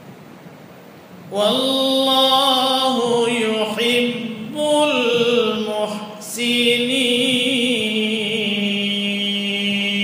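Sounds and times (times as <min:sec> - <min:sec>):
quiet hiss: 0:00.0 - 0:10.0
solo voice chanting: 0:01.3 - 0:10.0.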